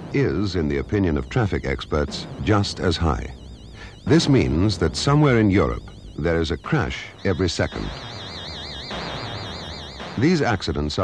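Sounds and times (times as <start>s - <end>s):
high electronic warbling tones: 0.1s - 11.0s.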